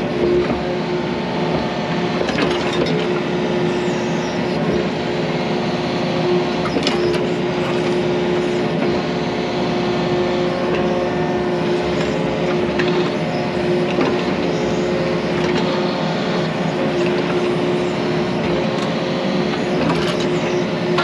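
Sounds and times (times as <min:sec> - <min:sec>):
excavator diesel engine and hydraulics: 0:00.0 - 0:21.0
steady hydraulic whine: 0:00.0 - 0:21.0.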